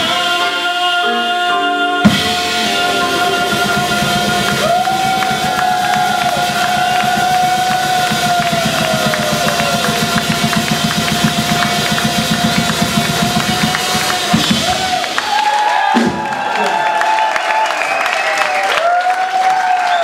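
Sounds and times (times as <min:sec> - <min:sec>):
swing jazz band playing: 0:00.0 - 0:15.2
busy drums and cymbals: 0:02.0 - 0:16.2.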